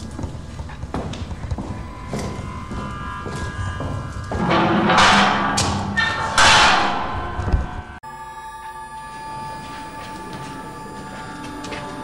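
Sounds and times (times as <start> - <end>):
film score music: 0.6 - 12.0.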